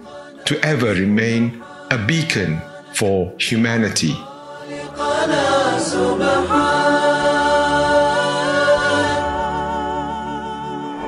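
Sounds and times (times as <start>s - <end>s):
vocal chant with sustained notes: 0.0s - 11.0s.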